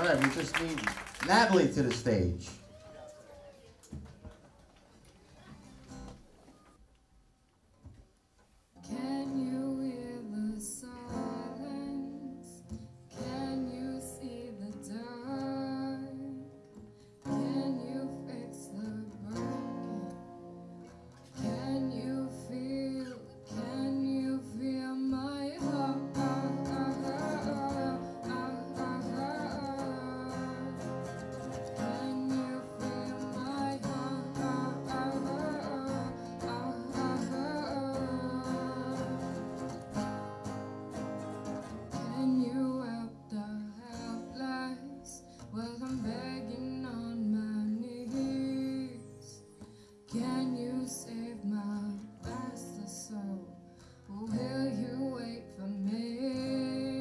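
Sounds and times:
acoustic guitars strumming: 8.8s - 57.0s.

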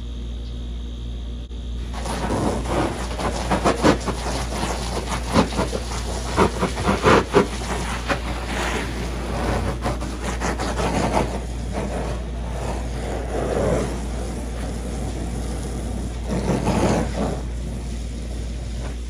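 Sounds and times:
hose spraying on vinyl pool: 1.8s - 19.0s.

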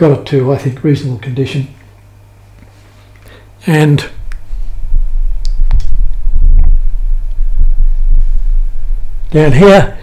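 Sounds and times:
camera handling rumble: 4.2s - 6.5s.

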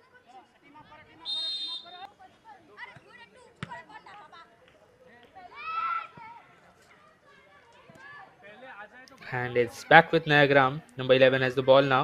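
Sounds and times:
referee's whistle blast: 1.2s - 2.0s
football being kicked: 3.6s - 3.8s.

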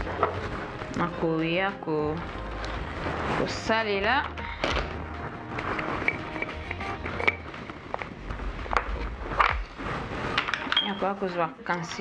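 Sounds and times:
woman speaking: 1.0s - 2.3s, 3.4s - 4.4s, 10.7s - 12.0s.

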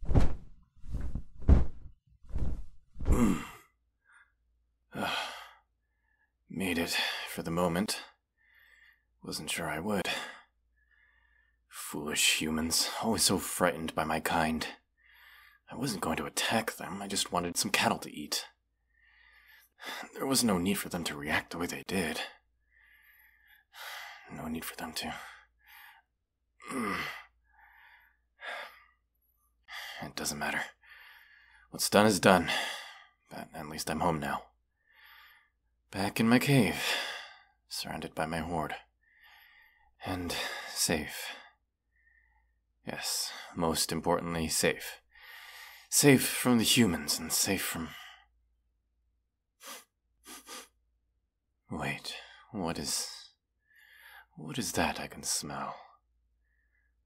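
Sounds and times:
dull thump: 0.0s - 3.4s
man's tired mm: 3.0s - 3.6s
long breathy sigh: 3.0s - 3.7s
man breathing: 8.4s - 9.2s, 10.2s - 11.6s, 15.0s - 15.7s, 18.8s - 20.1s, 22.4s - 24.3s, 25.2s - 30.0s, 30.7s - 31.7s, 34.7s - 35.6s, 39.0s - 40.8s, 41.4s - 42.6s, 45.1s - 45.9s, 49.6s - 50.8s, 53.6s - 54.3s, 56.4s - 57.0s.

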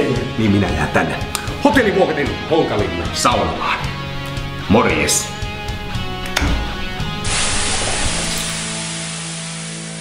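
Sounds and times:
guitar music: 0.0s - 9.1s
water hissing on hot stove: 6.8s - 10.0s.

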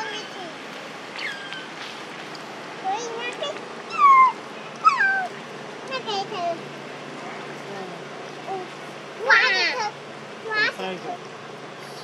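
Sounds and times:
young monkey whimpering calls: 3.9s - 5.4s.

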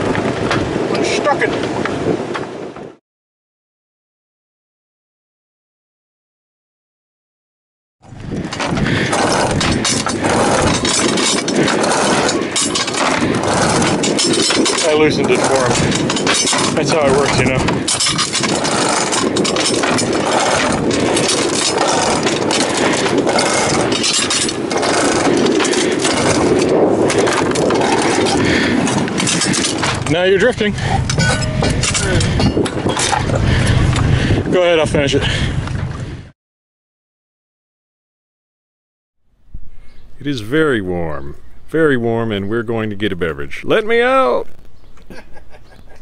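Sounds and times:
wind noise on microphone: 0.0s - 3.0s, 8.0s - 36.4s, 39.4s - 46.0s
boat engine running: 8.0s - 36.2s.

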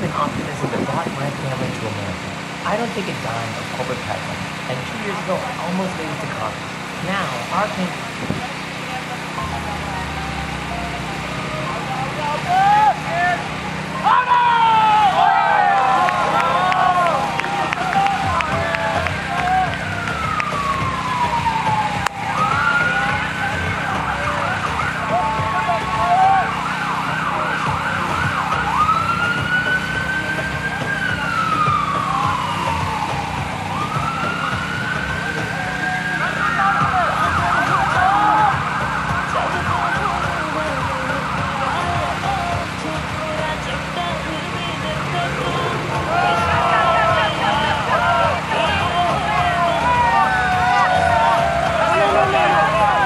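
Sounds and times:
faint voices: 0.0s - 53.0s
emergency siren wailing: 2.3s - 53.0s.

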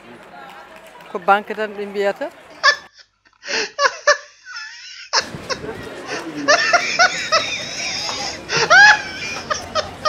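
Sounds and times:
street background noise: 0.0s - 10.0s
people laughing: 2.4s - 10.0s
voices: 5.2s - 10.0s.

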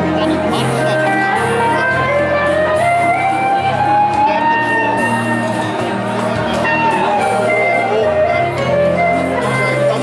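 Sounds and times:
bass notes: 0.0s - 10.0s
electric guitar: 0.0s - 10.0s
held melody line: 0.0s - 10.0s.

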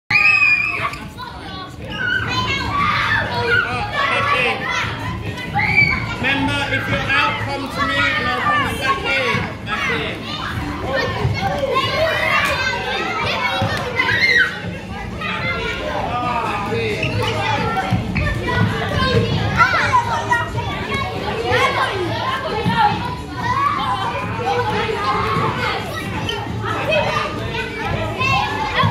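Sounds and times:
children shouting while playing: 0.1s - 6.3s, 7.6s - 16.3s.

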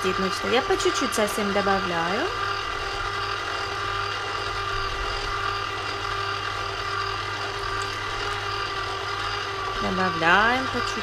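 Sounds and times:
electric motor whirring hum: 0.0s - 11.0s.

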